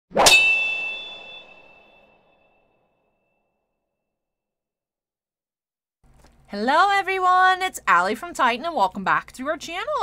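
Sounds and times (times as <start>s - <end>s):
metallic clang ringing: 0.2s - 2.6s.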